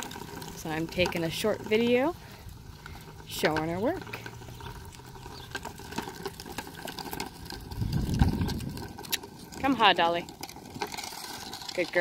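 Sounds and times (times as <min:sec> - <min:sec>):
hooves on dirt: 0:00.0 - 0:12.0
shafts dragging on ground: 0:00.0 - 0:12.0.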